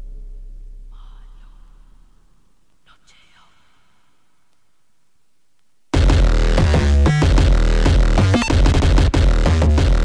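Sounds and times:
deep bass drone: 0.0 - 2.5, 6.0 - 10.0
whispered voice samples: 0.9 - 4.8.

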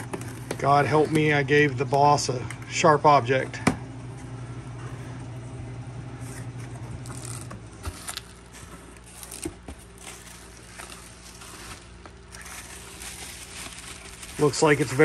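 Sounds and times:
steady low hum: 0.0 - 15.0
cardboard and bubble wrap rustling: 6.3 - 15.0.

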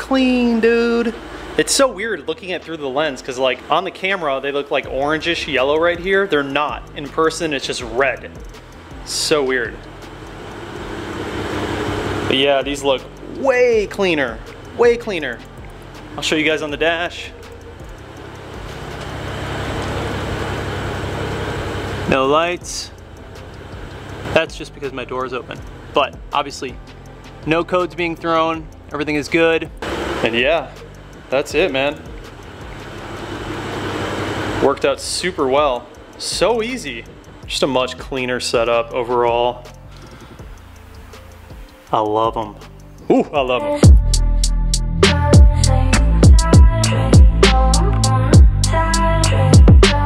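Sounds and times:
car engine idling: 0.0 - 41.8.

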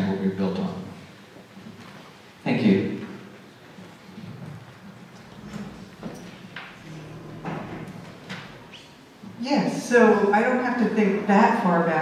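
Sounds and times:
faint knocks: 4.4 - 8.7
microphone handling rumble: 5.3 - 8.8.

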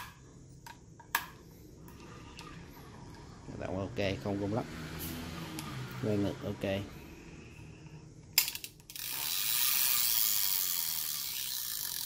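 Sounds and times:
fishing reel ratchet clicking: 8.4 - 12.0.

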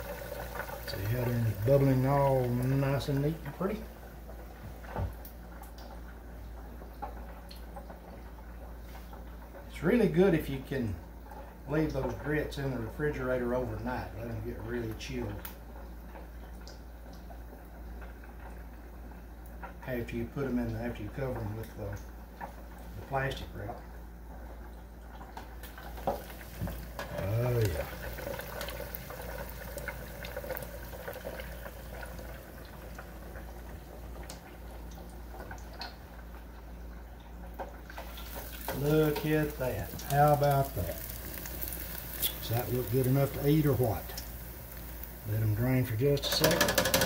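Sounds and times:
hot oil bubbling: 0.0 - 47.0
low fryer hum: 0.0 - 47.0
faint crackles: 11.1 - 47.0.

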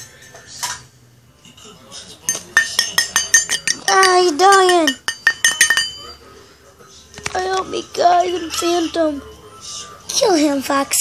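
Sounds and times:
hard objects clinking: 2.2 - 6.2.

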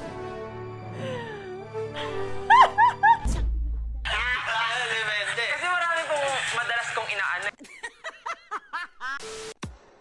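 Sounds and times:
high giggling laughter: 2.5 - 3.3, 7.6 - 9.2.

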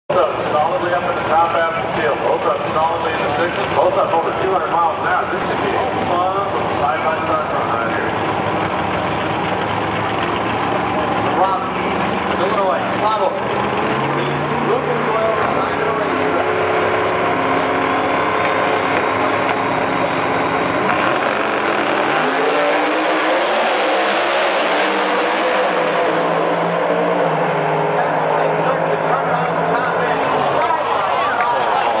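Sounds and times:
race car engines revving: 0.1 - 32.0.

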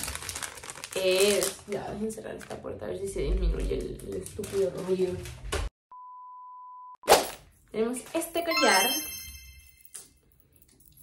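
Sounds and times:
bright metallic chime: 8.5 - 10.0.

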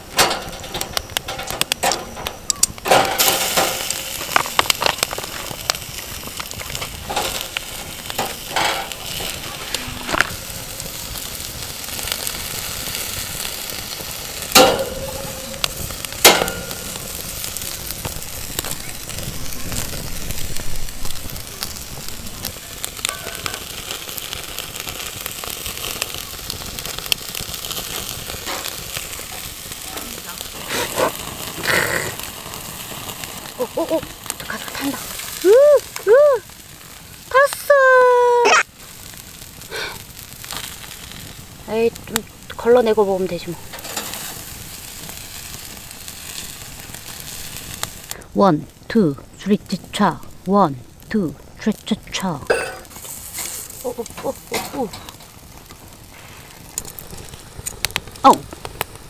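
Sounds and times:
sharp metallic clanks: 0.0 - 4.7, 14.5 - 17.2
chicken sizzling on grill: 0.0 - 59.0
tongs clicking on grill: 14.5 - 17.2.

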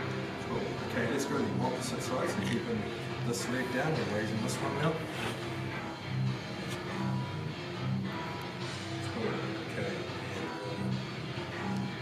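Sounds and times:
music with held low notes: 0.0 - 12.0.

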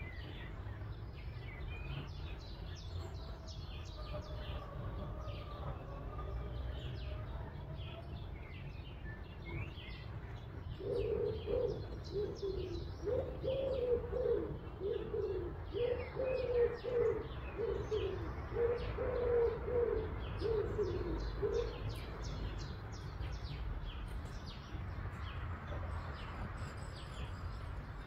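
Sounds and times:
low cooing bird call: 10.8 - 22.5.

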